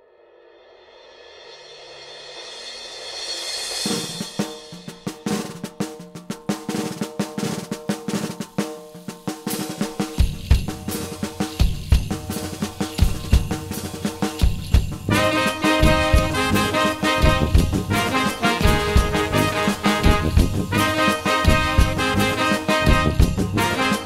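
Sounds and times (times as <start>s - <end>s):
drum kit and percussion beat: 0.8s - 24.0s
heavy bass drum hits: 14.5s - 23.6s
held instrument notes: 15.0s - 24.0s.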